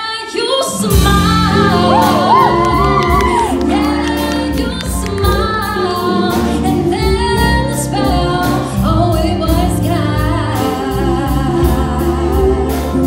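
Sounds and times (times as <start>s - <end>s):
woman singing with vibrato: 0.0s - 13.0s
drum kit with cymbals: 0.8s - 13.0s
electric guitar: 0.9s - 6.8s.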